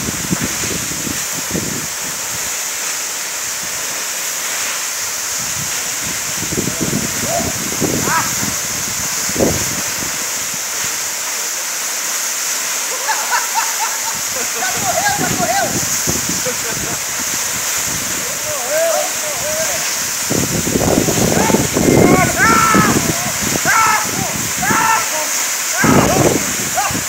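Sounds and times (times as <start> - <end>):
waterfall rushing: 0.0 - 27.0.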